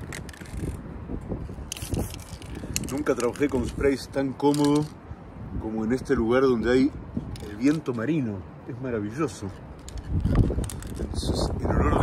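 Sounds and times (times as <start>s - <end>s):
wind rumbling on microphone: 0.0s - 12.0s
cap clicks and rattles: 4.4s - 5.0s, 9.5s - 11.2s.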